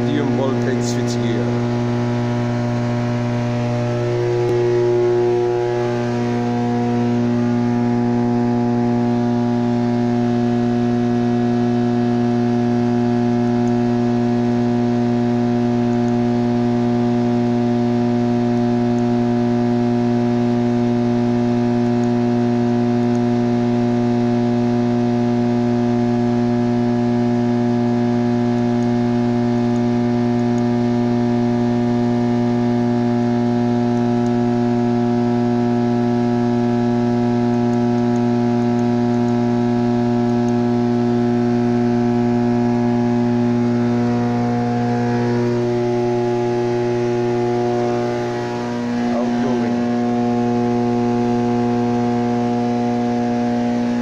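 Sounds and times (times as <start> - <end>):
electrical hum: 0.0 - 54.0.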